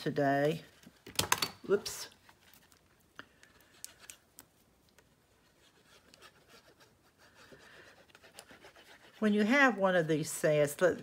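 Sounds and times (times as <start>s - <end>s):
glue bottle tip rubbing on card: 5.5s - 9.6s.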